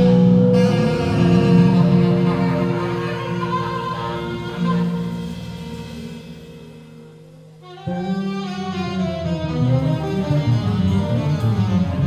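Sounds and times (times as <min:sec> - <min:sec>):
jazz band holding a chord: 0:00.0 - 0:12.0.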